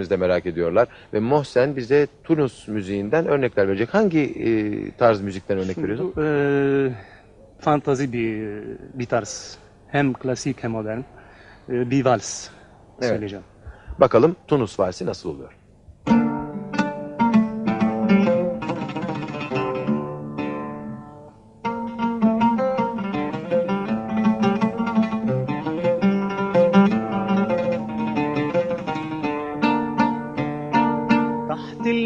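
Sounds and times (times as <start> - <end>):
solo oud playing: 16.1 - 31.9.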